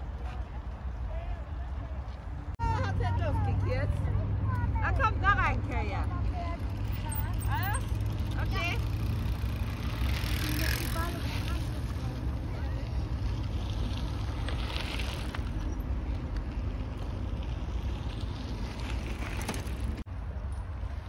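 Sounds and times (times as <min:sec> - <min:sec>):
bike tyres on gravel: 0:05.2 - 0:20.1.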